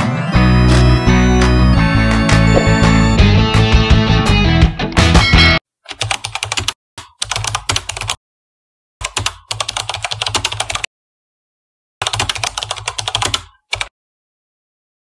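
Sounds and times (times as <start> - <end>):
computer keyboard typing: 5.9 - 8.2, 9.0 - 10.9, 12.0 - 13.9.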